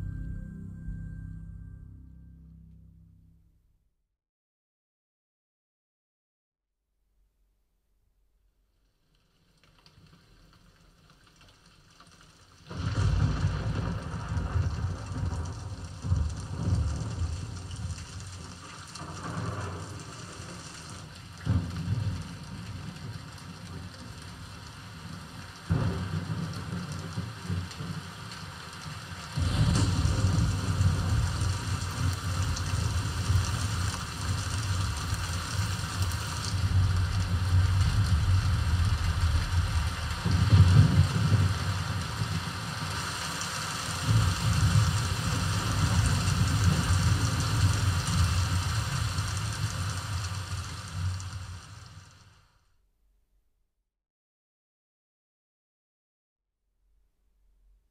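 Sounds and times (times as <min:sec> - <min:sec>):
rain hiss: 0:09.2 - 0:52.6
deep rolling thunder: 0:12.7 - 0:52.0
thunder cracks: 0:12.7 - 0:52.1.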